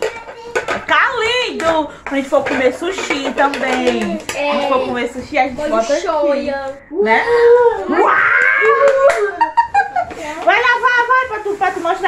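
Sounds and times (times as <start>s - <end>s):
woman squealing with delight: 7.4s - 9.4s
sharp claps: 8.6s - 9.4s
woman laughing: 9.2s - 10.2s.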